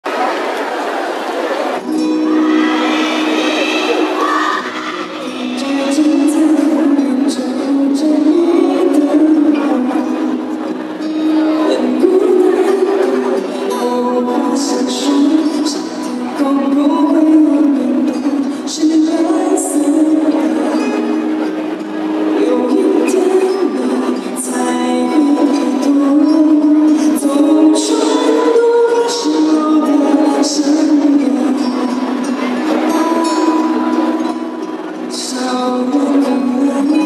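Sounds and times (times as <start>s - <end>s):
live pop band playing: 1.8s - 37.0s.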